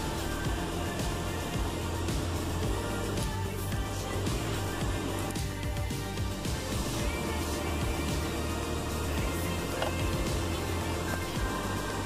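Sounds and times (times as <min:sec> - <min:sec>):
background music with low bass: 0:00.0 - 0:12.0.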